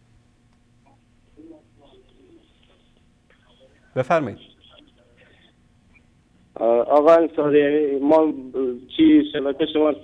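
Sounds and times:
man's voice: 0:04.0 - 0:04.4.

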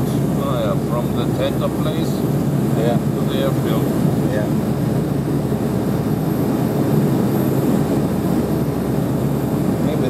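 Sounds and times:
airliner cabin engine drone: 0:00.0 - 0:10.0.

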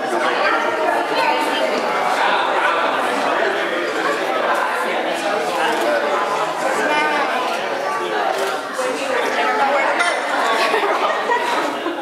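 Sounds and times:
hubbub of many voices: 0:00.0 - 0:12.0.

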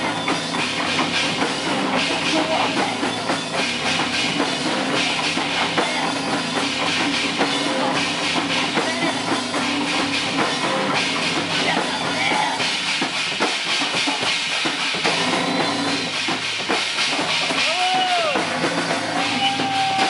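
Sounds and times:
bass guitar: 0:00.0 - 0:20.0
drum kit hits: 0:00.0 - 0:20.0.

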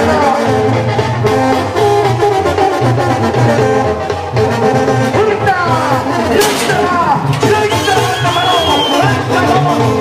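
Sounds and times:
brass band music: 0:00.0 - 0:10.0.

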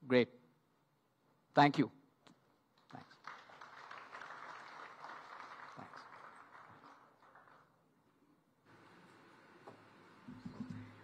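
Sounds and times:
faint audience applause: 0:02.9 - 0:08.0.

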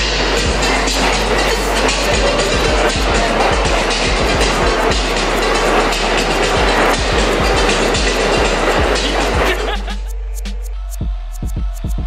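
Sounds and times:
subway train in station: 0:00.0 - 0:10.1.

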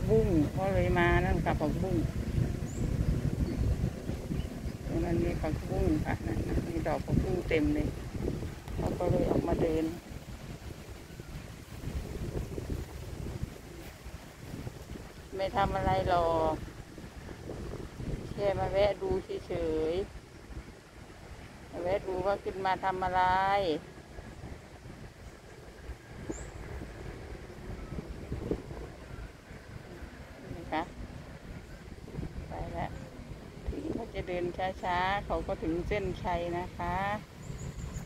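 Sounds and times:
low outdoor rumble: 0:00.0 - 0:38.0
wind buffeting microphone: 0:00.0 - 0:38.0.

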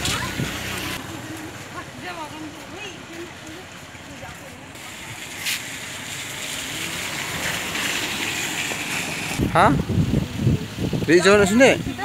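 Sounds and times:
wind rumble on microphone: 0:00.0 - 0:01.0, 0:09.2 - 0:12.0
rushing flooded river: 0:00.0 - 0:12.0.

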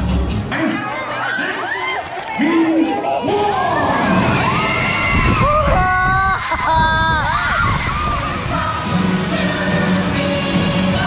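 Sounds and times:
exaggerated character voices crying out: 0:03.3 - 0:08.4.

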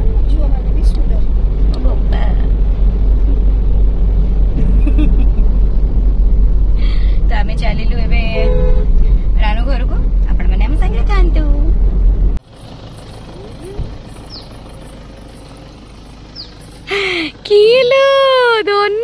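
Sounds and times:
car engine and tyres rumbling: 0:00.0 - 0:19.0
women talking: 0:16.9 - 0:19.0.

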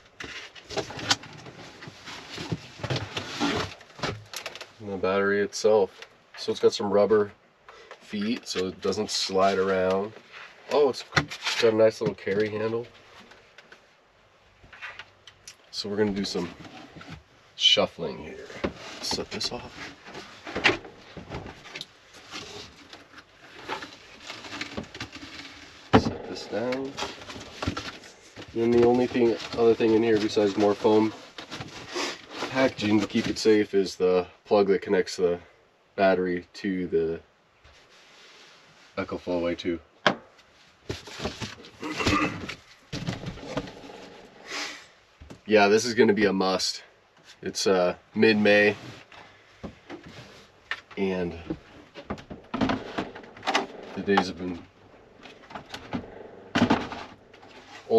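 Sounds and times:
cardboard and foam rustling: 0:00.1 - 0:04.9, 0:15.9 - 0:33.6, 0:40.5 - 0:44.3, 0:48.2 - 0:57.9.

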